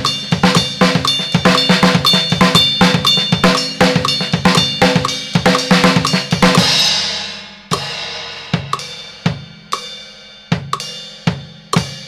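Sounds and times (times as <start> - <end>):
drum kit playing salsa beat: 0.0 - 12.0.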